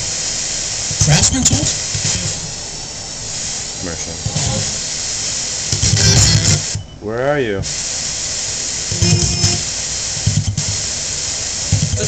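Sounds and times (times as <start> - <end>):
radio static hiss: 0.0 - 12.0
snatches of radio broadcast: 0.9 - 2.5, 4.2 - 4.8, 5.7 - 6.8, 11.7 - 12.0.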